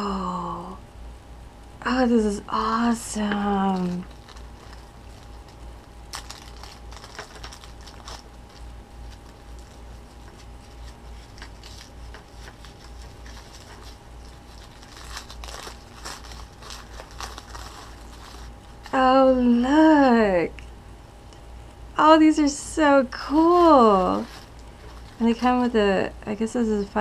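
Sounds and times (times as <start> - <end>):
plastic wrapping crinkling: 3.3 - 19.2, 23.2 - 26.0.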